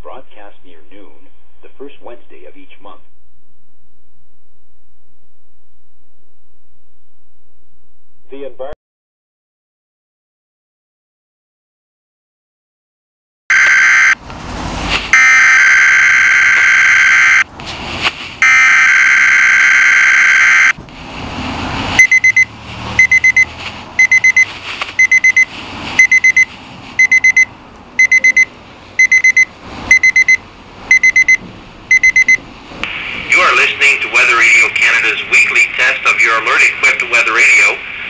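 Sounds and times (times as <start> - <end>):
high-pitched alarm beeping: 13.5 - 14.2, 15.2 - 17.4, 18.4 - 20.8, 22.0 - 32.4
long steady alert tones: 13.5 - 14.2, 15.2 - 17.4, 18.4 - 20.8, 22.0 - 32.4
faint traffic noise: 20.8 - 38.0.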